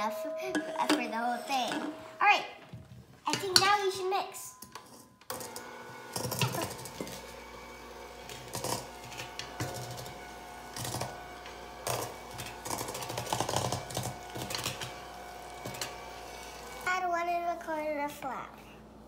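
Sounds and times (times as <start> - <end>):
hand mixer motor whine: 5.3 - 16.9.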